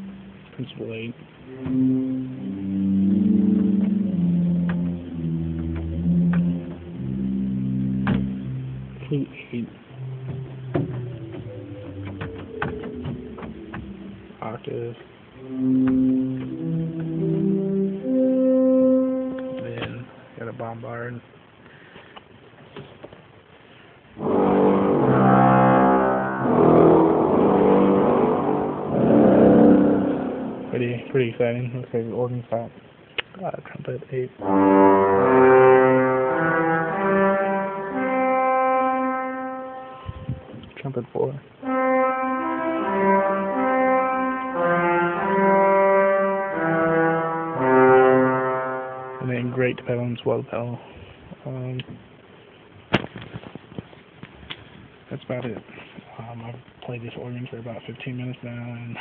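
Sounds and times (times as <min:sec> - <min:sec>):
pipe organ low sustained notes: 0:00.0 - 0:21.2, 0:24.1 - 0:32.8, 0:34.1 - 0:50.8.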